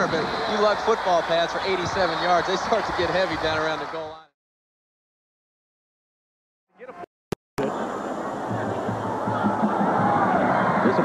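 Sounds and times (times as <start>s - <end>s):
stadium crowd din: 0.0s - 4.3s, 7.6s - 11.0s.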